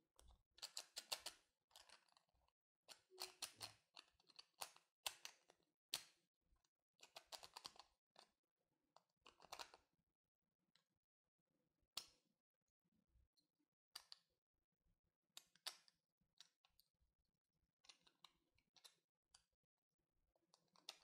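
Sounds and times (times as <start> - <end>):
plastic puzzle pieces clicking: 0.2 - 2.3, 2.9 - 6.2, 7.0 - 8.3, 9.2 - 9.8, 15.4 - 16.8, 17.8 - 19.5, 20.5 - 21.0.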